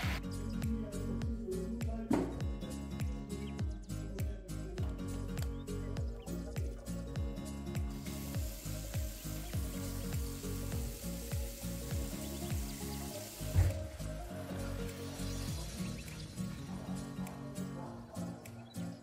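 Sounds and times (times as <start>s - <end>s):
background music with steady beat: 0.0s - 19.0s
tap water running into basin: 7.9s - 14.1s.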